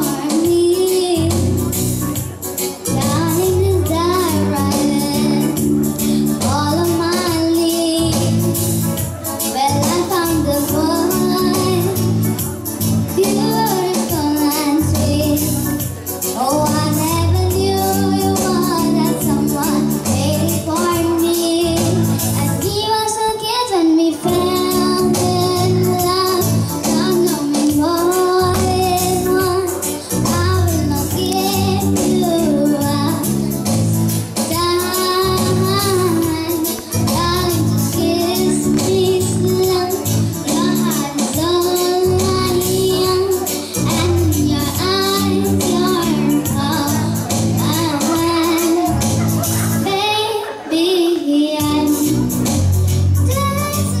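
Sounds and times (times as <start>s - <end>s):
electronic keyboard accompaniment: 0.0s - 54.0s
girl singing into a microphone: 0.0s - 54.0s.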